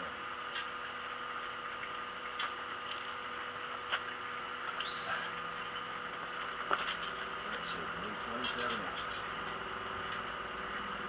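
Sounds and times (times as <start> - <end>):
steady hum and hiss: 0.0 - 11.0.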